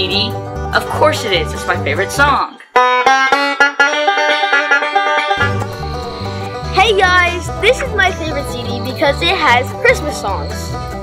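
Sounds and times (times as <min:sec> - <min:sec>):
banjo picked quickly: 0:00.6 - 0:11.0
music with deep bass: 0:05.4 - 0:11.0.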